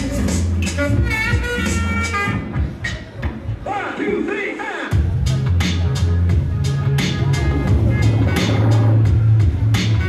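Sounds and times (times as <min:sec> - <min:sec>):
deep bass line: 0:00.0 - 0:02.8, 0:04.9 - 0:10.0
drum and hi-hat hits: 0:00.0 - 0:03.6, 0:04.9 - 0:10.0.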